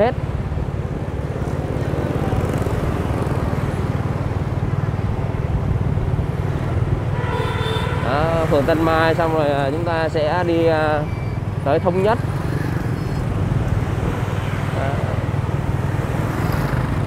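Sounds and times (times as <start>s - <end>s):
road noise: 0.0s - 17.0s.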